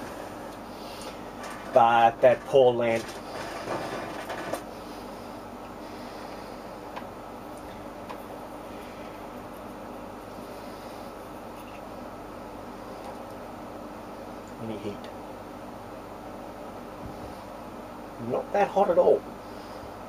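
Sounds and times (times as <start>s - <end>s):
electrical hum with hiss: 0.0s - 20.0s.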